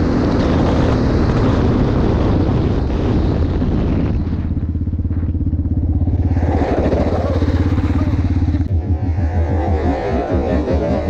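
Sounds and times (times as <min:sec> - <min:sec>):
atv engine running at low revs: 0:00.0 - 0:11.0
wind noise: 0:00.0 - 0:11.0.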